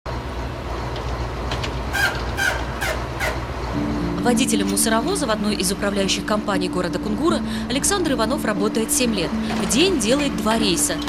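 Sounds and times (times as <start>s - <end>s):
garbage truck engine humming: 0.1s - 11.0s.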